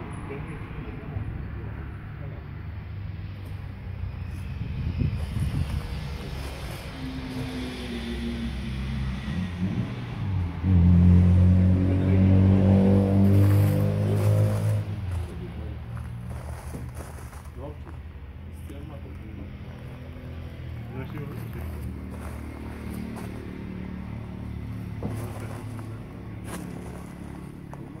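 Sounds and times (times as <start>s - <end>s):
motor engine rumbling: 0.0s - 28.0s.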